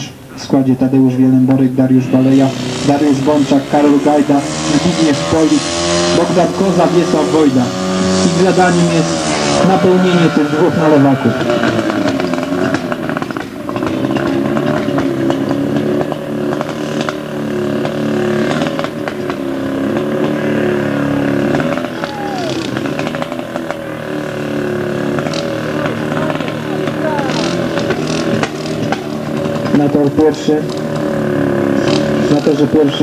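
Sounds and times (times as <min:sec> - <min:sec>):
pump engine running at high revs: 0:01.6 - 0:33.0.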